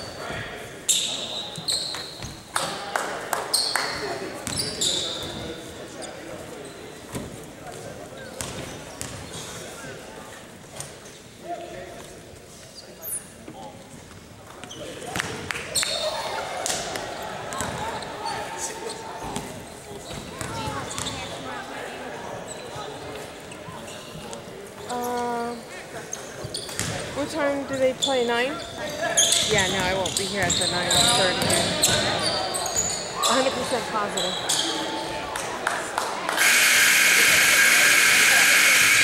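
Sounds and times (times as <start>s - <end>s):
voices echoing in hall: 0.0s - 39.0s
sneakers squeaking on court: 0.9s - 2.5s, 3.5s - 9.9s, 17.5s - 21.4s, 22.5s - 35.0s.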